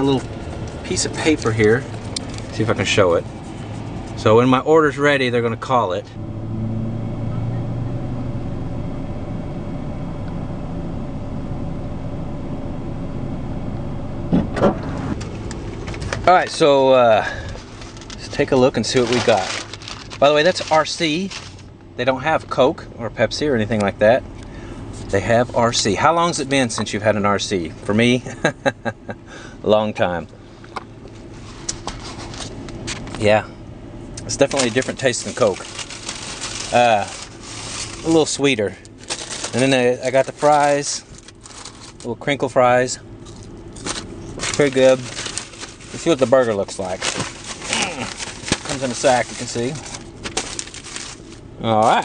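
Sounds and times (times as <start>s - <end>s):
steady low hum: 0.0s - 52.0s
truck engine idling: 0.0s - 52.0s.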